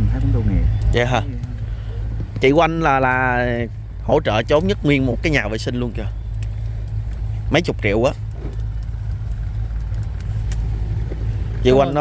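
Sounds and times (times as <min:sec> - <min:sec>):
steady low rumble: 0:00.0 - 0:12.0
person speaking: 0:11.6 - 0:12.0.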